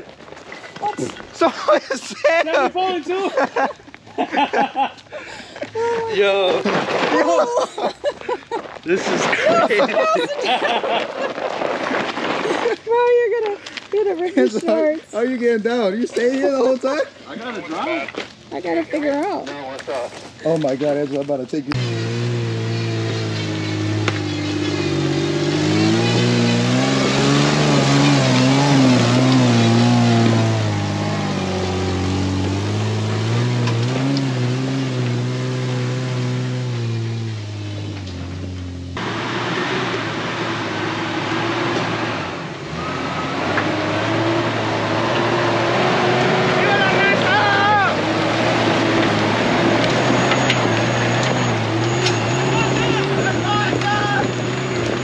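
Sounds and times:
voices calling out: 0.6s - 11.3s, 21.7s - 38.2s, 39.7s - 55.0s
engine running steadily: 21.7s - 42.7s
engine revving: 21.7s - 55.0s.

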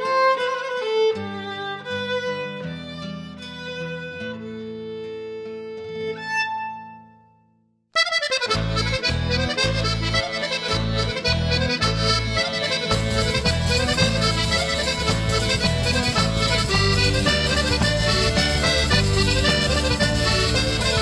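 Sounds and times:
accordion folk dance music: 0.0s - 7.0s, 8.0s - 21.0s
pulsing bass line: 10.8s - 21.0s.

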